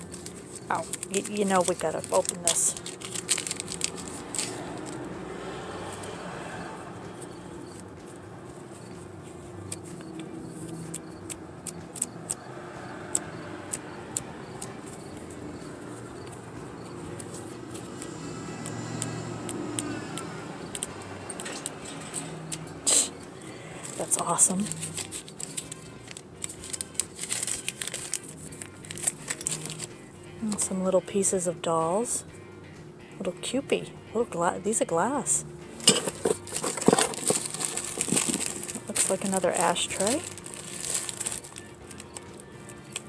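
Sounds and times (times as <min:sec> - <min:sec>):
paper clicks and crinkles: 0:00.0 - 0:05.1, 0:08.5 - 0:12.2, 0:17.0 - 0:18.1, 0:23.8 - 0:29.9, 0:35.9 - 0:43.0.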